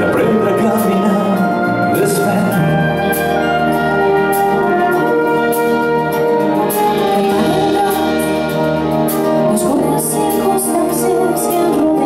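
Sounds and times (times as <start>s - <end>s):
drum kit: 0.0s - 12.0s
wind band playing sustained chords: 0.0s - 12.0s.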